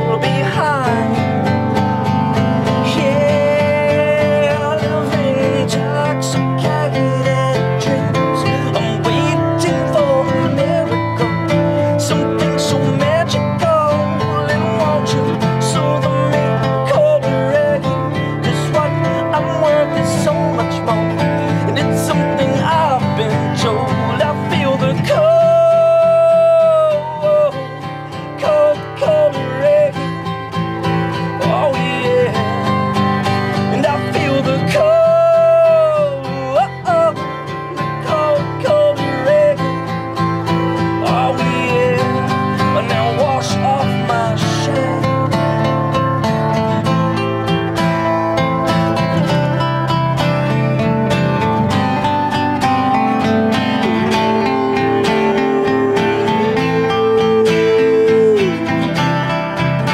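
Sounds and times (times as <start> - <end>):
guitars strumming: 0.0 - 59.9.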